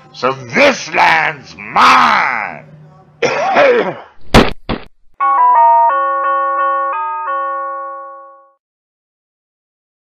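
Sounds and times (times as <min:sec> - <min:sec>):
doorbell-like chime jingle: 0:05.2 - 0:08.6.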